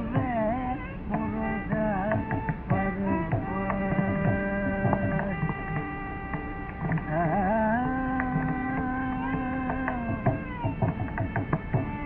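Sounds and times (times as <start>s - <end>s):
man singing long note: 0.0s - 5.9s, 6.9s - 10.4s.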